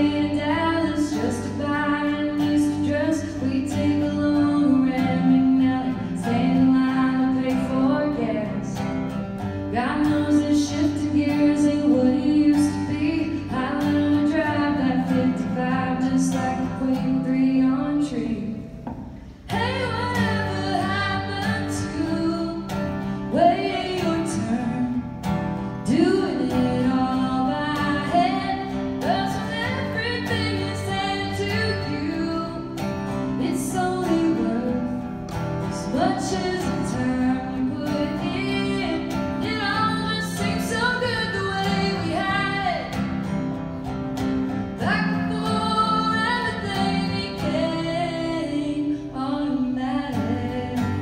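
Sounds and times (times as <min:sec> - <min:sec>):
acoustic guitars strumming: 0:00.0 - 0:51.0
woman singing: 0:00.0 - 0:51.0.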